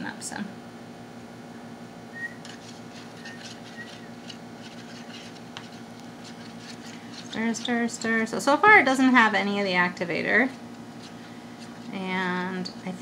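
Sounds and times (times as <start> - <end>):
steady hum: 0.0 - 13.0
stick stirring glue in a cup: 2.4 - 8.5, 10.4 - 12.7.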